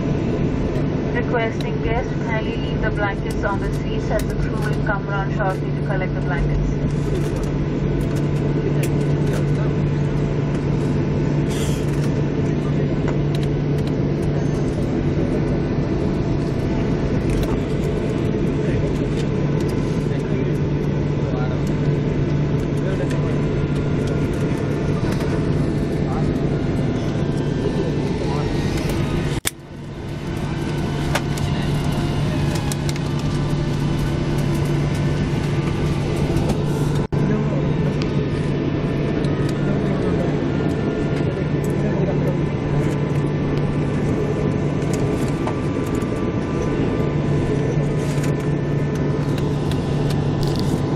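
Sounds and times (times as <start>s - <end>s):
indistinct passenger chatter: 0.0s - 50.9s
jet engines humming in cabin: 0.0s - 50.9s.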